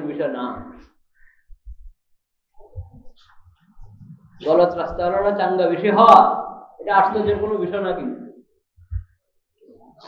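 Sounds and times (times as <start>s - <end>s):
man speaking: 4.4s - 8.3s.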